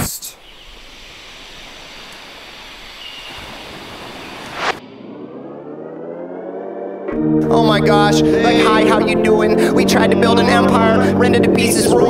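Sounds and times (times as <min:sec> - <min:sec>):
steady hiss: 0:00.0 - 0:04.8
muffled rising tone: 0:00.6 - 0:09.2.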